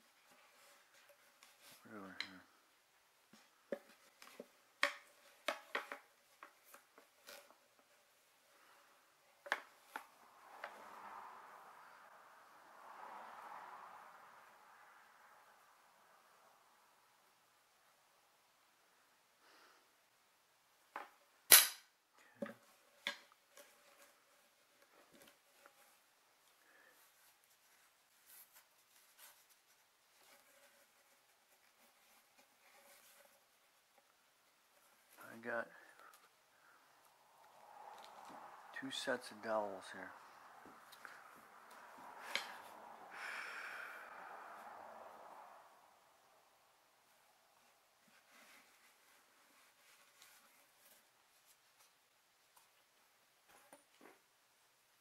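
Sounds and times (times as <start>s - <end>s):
long breathy sigh: 42.3s - 44.9s.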